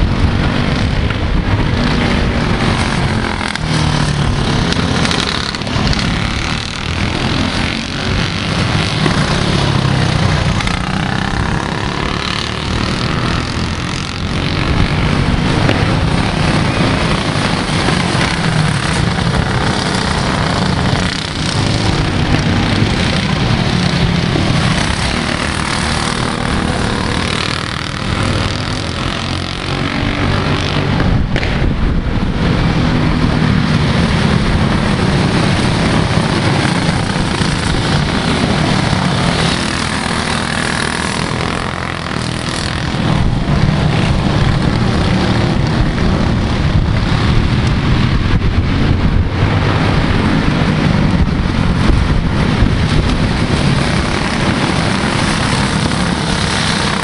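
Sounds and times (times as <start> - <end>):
go-kart engines racing: 0.0 - 57.0.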